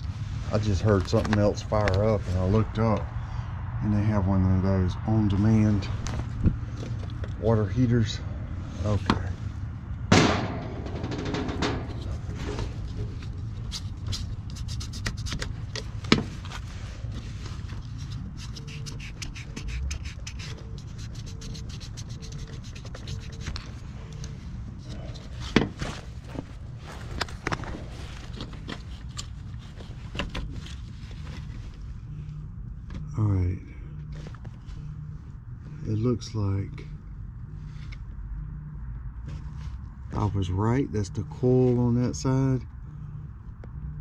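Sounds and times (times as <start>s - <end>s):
steady low hum: 0.0s - 44.0s
gloved hands rubbing wires: 10.9s - 32.1s.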